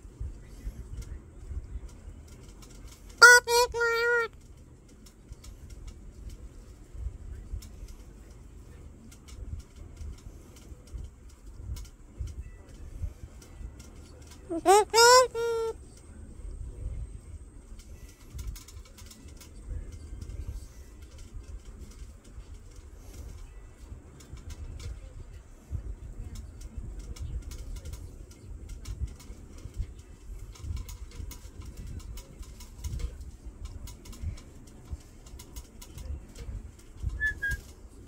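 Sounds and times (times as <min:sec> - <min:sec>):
parrot making low sounds: 0:03.2 - 0:04.3, 0:14.5 - 0:15.8
soft low bird sounds: 0:12.3 - 0:16.2.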